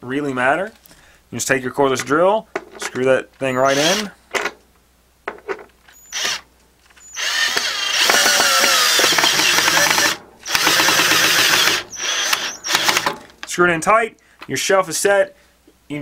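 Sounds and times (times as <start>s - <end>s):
cordless drill driving screw: 3.6s - 4.1s, 6.0s - 6.4s, 7.0s - 13.2s.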